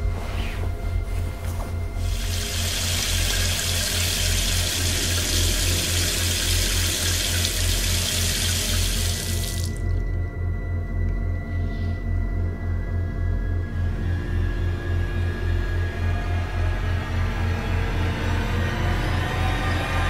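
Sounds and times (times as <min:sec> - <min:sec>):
low pulsing music drone: 0:00.0 - 0:20.0.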